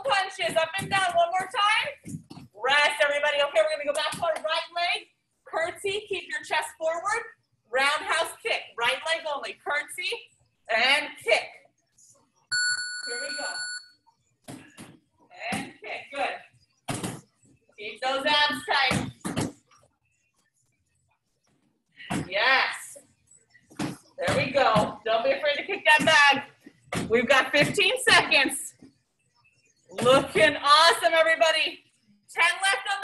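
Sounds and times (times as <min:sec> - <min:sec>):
electronic bell-like beep: 0:12.5 - 0:13.9
woman speaking: 0:30.0 - 0:33.0.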